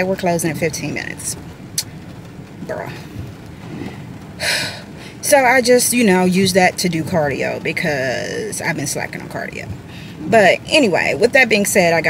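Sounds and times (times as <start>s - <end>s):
car interior rumble: 0.0s - 12.0s
woman breathing: 3.6s - 5.2s, 9.8s - 10.3s.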